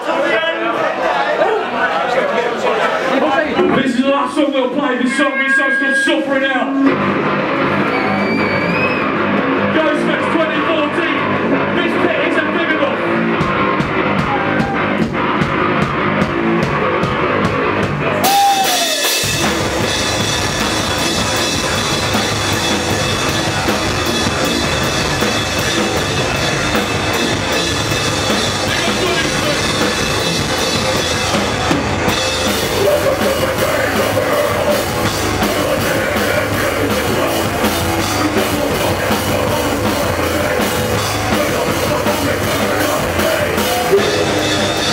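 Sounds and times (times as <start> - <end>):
live band through a pa: 2.7 - 44.9
drums: 2.8 - 44.9.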